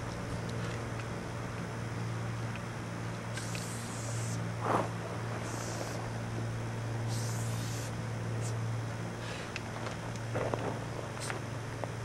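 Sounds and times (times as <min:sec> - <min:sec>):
steady low hum: 0:00.0 - 0:12.0
spray-paint can hissing: 0:03.3 - 0:04.4, 0:05.4 - 0:06.0, 0:07.1 - 0:08.6.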